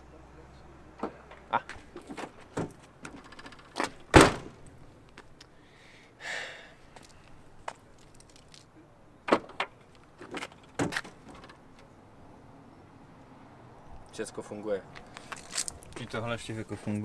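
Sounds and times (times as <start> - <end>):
lock actuators buzzing rattle: 2.0 - 4.7
loud lock thunk: 3.8 - 4.6.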